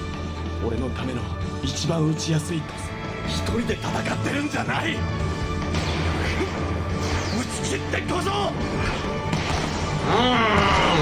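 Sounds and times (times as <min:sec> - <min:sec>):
dramatic orchestral music: 0:00.0 - 0:11.0.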